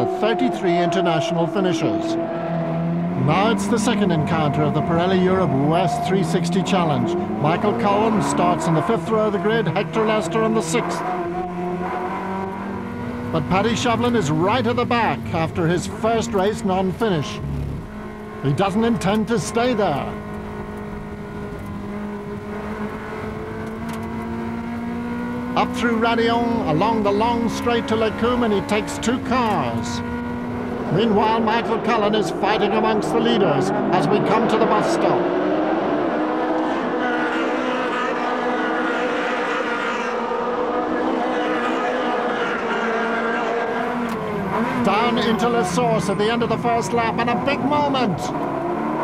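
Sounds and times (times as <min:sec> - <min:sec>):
race car engine at high revs: 0:00.0 - 0:49.0.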